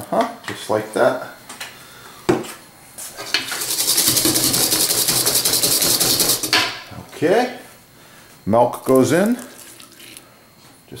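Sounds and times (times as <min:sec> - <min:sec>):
whisk beating in metal bowl: 0:03.3 - 0:06.9.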